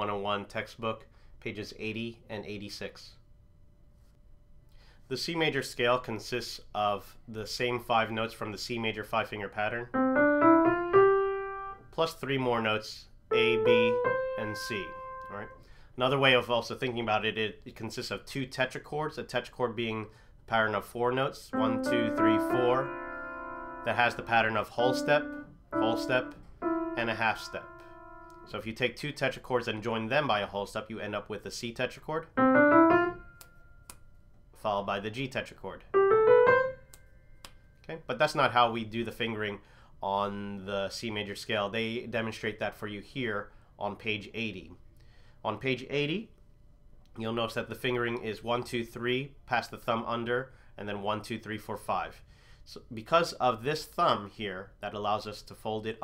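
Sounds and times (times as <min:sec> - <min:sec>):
piano notes stepping up: 0:09.9 - 0:11.9, 0:13.3 - 0:15.6, 0:21.5 - 0:28.6, 0:32.4 - 0:33.6, 0:35.9 - 0:37.0.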